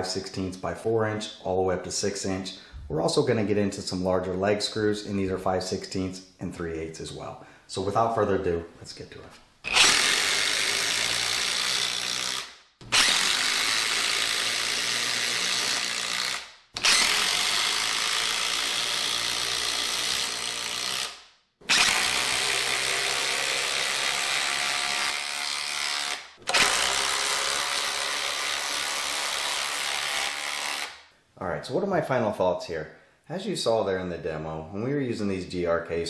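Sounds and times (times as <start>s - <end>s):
impact driver hammering screws: 9.7s - 31.0s.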